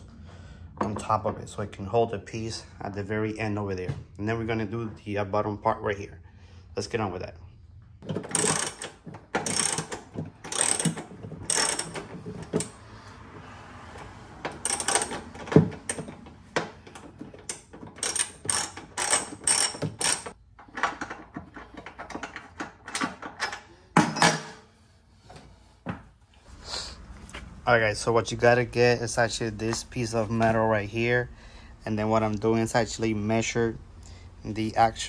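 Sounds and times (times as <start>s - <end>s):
hand ratchet clicking: 8.1s - 12.8s, 14.0s - 16.2s, 17.4s - 20.4s.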